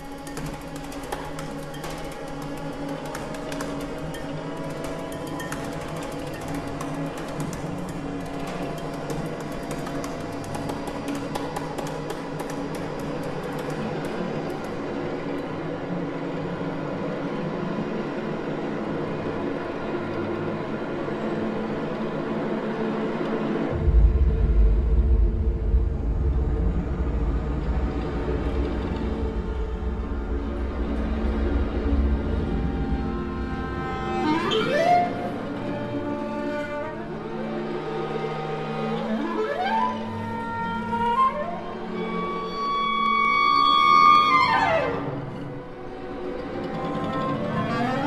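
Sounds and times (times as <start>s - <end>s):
deep low rumble: 23.8s - 34.1s.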